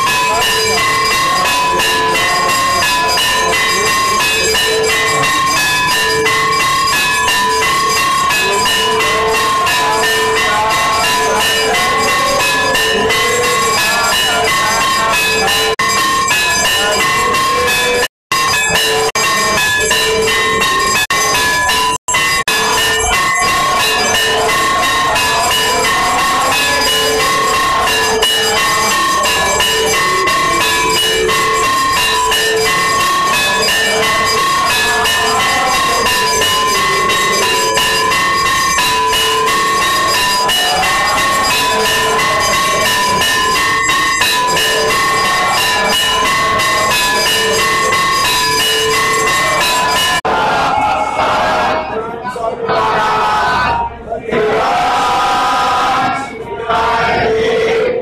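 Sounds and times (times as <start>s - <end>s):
temple bells clanging: 0.0s - 58.0s.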